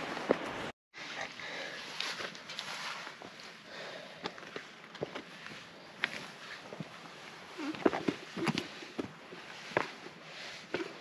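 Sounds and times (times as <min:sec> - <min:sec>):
heavy breathing: 0:01.0 - 0:02.1, 0:03.6 - 0:06.1
footsteps on rocky dirt trail: 0:01.9 - 0:11.0.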